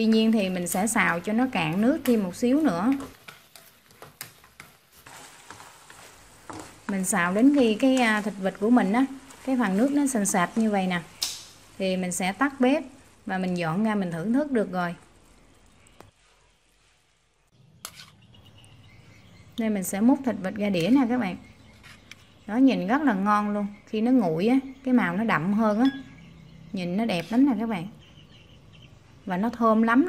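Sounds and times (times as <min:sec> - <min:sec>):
sauce sizzling: 0:00.0 - 0:19.4.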